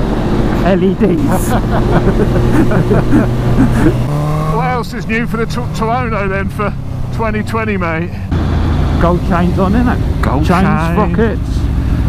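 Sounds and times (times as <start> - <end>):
road noise: 0.0 - 12.0
man talking: 0.6 - 2.9, 4.4 - 8.3, 9.0 - 11.7.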